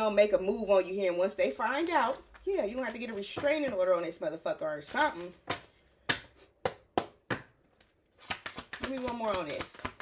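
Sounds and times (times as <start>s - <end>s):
cards tapping: 5.0s - 10.0s.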